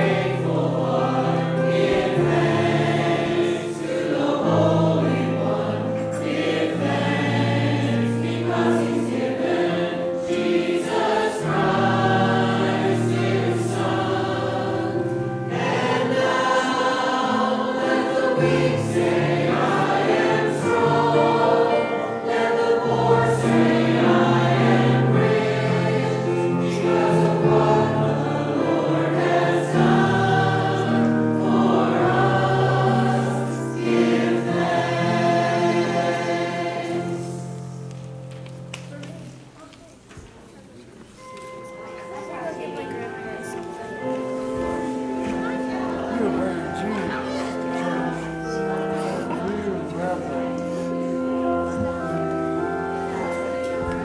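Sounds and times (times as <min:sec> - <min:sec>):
church choir singing a hymn: 0:00.0 - 0:38.6, 0:42.2 - 0:54.0.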